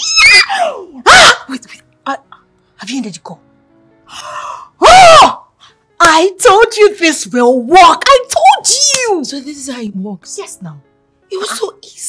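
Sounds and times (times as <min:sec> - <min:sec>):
woman squealing with excitement: 0:00.0 - 0:01.5, 0:04.8 - 0:05.4.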